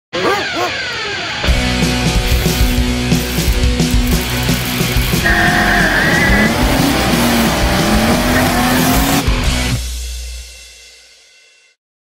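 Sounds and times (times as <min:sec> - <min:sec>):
rock music with a beat: 0:01.4 - 0:11.8
car engine revving: 0:04.7 - 0:09.4
tyre squeal: 0:05.2 - 0:09.1.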